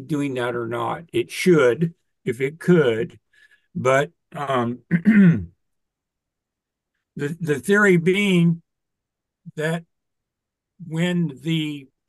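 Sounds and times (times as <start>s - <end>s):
man clearing his throat: 4.9s - 5.5s.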